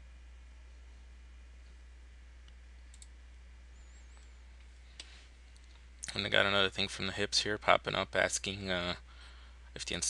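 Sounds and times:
low electrical hum: 0:00.0 - 0:10.0
computer mouse clicks: 0:02.9 - 0:03.1.

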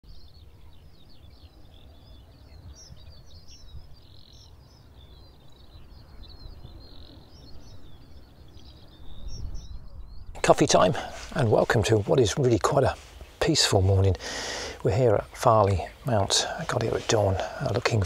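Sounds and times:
birds chirping and trilling: 0:00.1 - 0:18.0.

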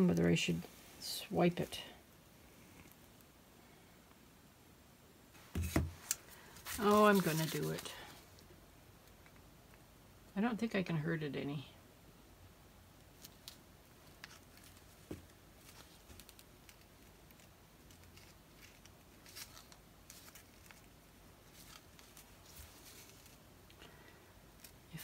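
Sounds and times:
faint handling clicks and rustles: 0:13.1 - 0:25.0.

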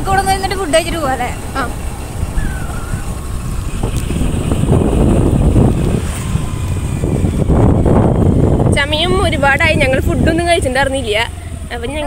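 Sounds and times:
motorcycle engine running: 0:00.0 - 0:12.0
wind buffeting microphone: 0:00.0 - 0:12.0.

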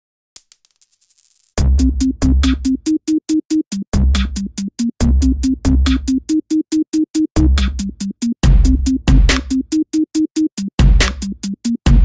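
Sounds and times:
coin dropping and settling: 0:00.4 - 0:01.6
electronic music with heavy bass: 0:01.7 - 0:12.0.

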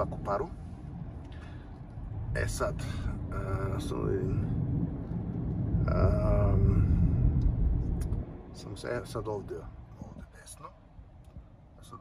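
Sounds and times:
car engine and tyres rumble: 0:00.0 - 0:12.0
man speaking: 0:02.4 - 0:04.4.

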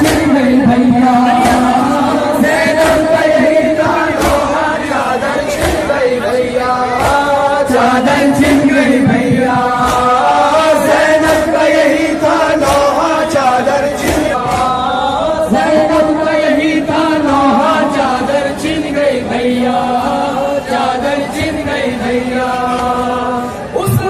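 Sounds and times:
sharp rhythmic strikes: 0:00.0 - 0:23.1
men chanting a lament: 0:00.0 - 0:24.0.

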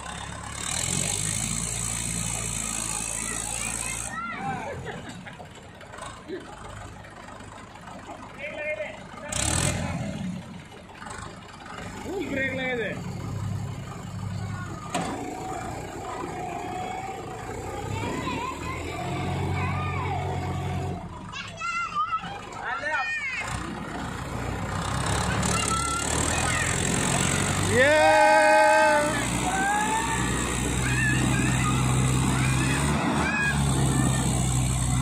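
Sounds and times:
tractor diesel engines droning: 0:00.0 - 0:35.0
voices calling out: 0:00.0 - 0:35.0.

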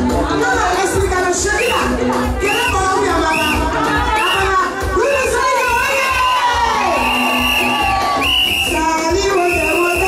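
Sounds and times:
women singing and shouting: 0:00.0 - 0:10.0
high-pitched cheering calls: 0:05.6 - 0:10.0.

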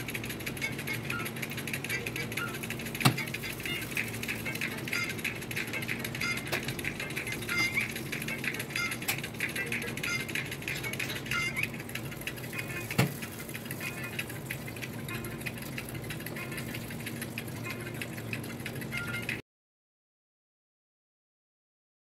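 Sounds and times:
oven hum: 0:00.0 - 0:19.4
fat sizzling and crackling: 0:10.8 - 0:17.5.

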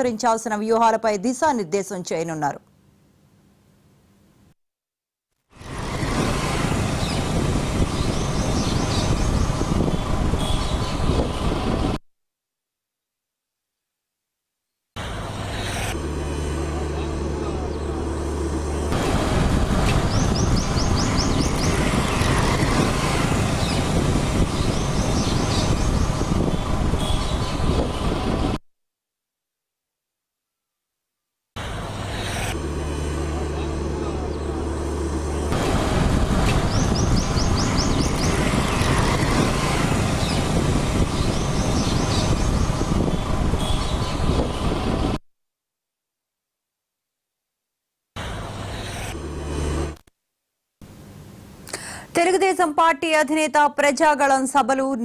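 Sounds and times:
rough traffic rumble: 0:05.5 - 0:12.0, 0:15.0 - 0:28.6, 0:31.6 - 0:45.2, 0:48.2 - 0:50.0
low engine hum: 0:05.6 - 0:12.0, 0:15.0 - 0:28.6, 0:31.6 - 0:45.2, 0:48.2 - 0:50.0.

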